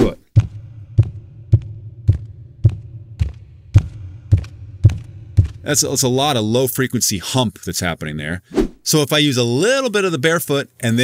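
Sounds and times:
barefoot footsteps on cement: 0.4 - 5.8.

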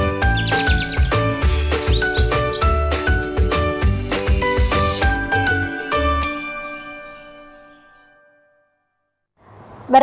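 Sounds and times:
bright jingle music: 0.0 - 8.8.

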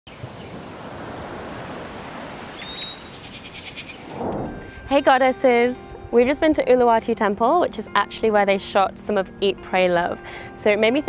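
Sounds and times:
birds calling: 0.1 - 4.2
outdoor noise: 0.1 - 6.7.

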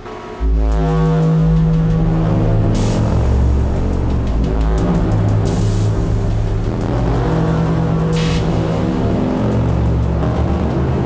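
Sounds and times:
heavy low drone: 0.0 - 11.0
industrial electronic music: 0.0 - 11.0
hissy noise bursts: 2.6 - 10.2.

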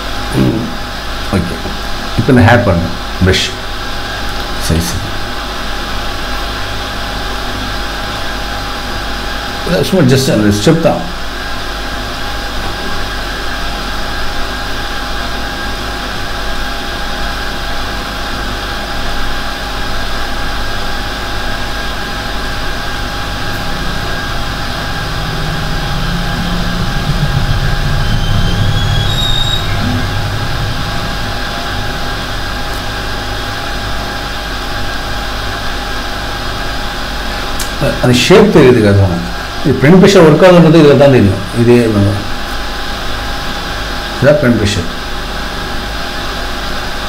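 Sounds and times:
mechanical hum and hiss: 0.0 - 47.0
fixed whining tones: 21.4 - 33.9
low rumble: 21.9 - 33.6.

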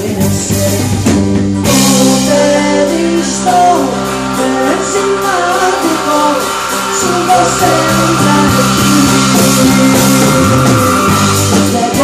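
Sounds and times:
electric guitar: 0.0 - 12.0
live band playing: 0.0 - 12.0.

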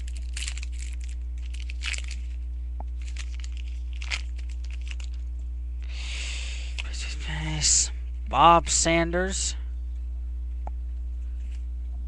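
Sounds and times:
wrapper tearing and crinkling: 0.0 - 2.4, 3.0 - 5.3
low electrical hum: 0.0 - 12.0.

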